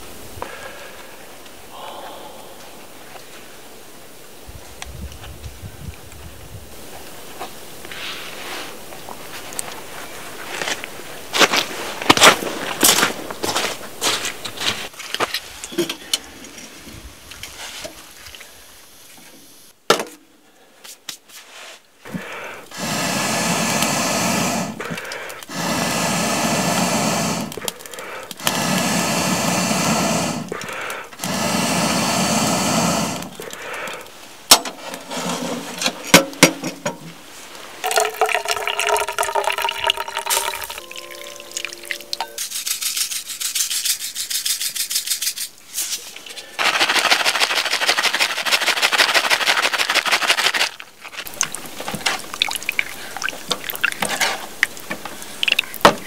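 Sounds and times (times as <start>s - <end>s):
hissing bubbling liquid: 22.2s - 34.4s, 37.5s - 42.4s, 46.6s - 56.0s
water pouring into metal pot: 37.8s - 42.4s, 50.7s - 55.9s.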